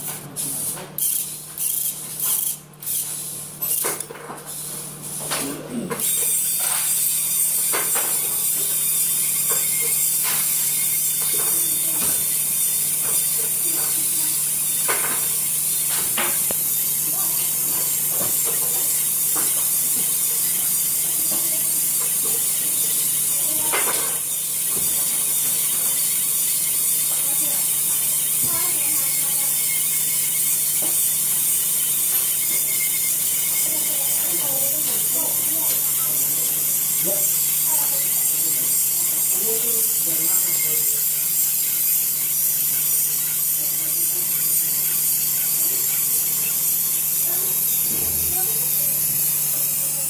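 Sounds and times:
model crane winch motor whining: 6.0s - 50.0s.

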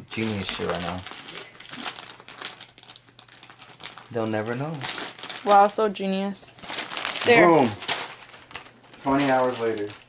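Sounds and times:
wrapping paper crinkling: 0.0s - 10.0s.

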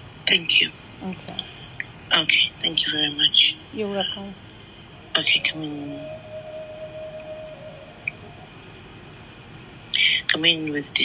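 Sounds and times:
faint hum-like tone: 0.0s - 11.0s
phone line hiss: 4.9s - 8.6s.

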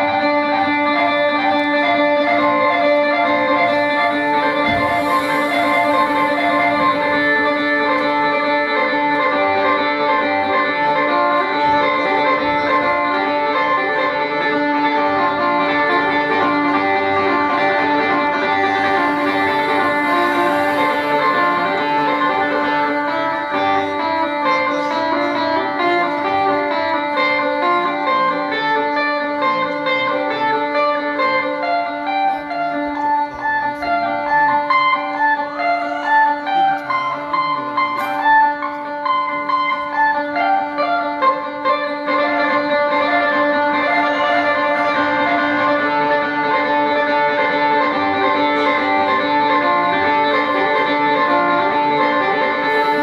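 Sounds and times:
quick melodic notes: 0.0s - 53.0s
steady held drone: 0.0s - 53.0s.

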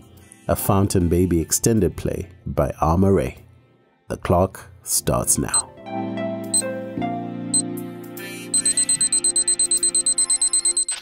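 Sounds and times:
rapid high electronic beeps: 8.6s - 11.0s.

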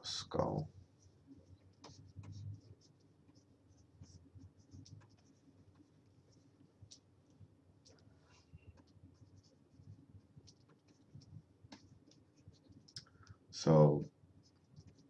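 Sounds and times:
stylus scratching on tablet: 0.3s - 13.0s, 14.4s - 15.0s.

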